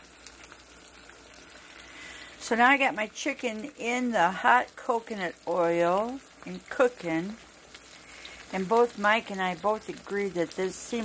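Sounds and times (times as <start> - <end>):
chicken frying in oil: 0.0 - 11.0.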